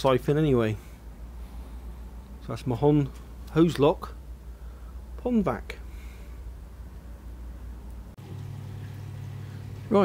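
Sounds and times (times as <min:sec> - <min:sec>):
pond vacuum motor humming: 0:08.2 - 0:10.0.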